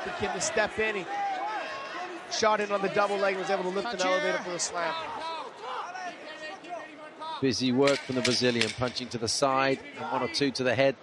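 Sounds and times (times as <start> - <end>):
people shouting: 0.0 - 7.4
low arena crowd hubbub: 0.0 - 11.0.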